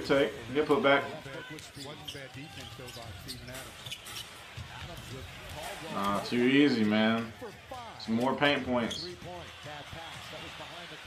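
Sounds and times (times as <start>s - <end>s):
commentator talking: 0.0s - 3.2s.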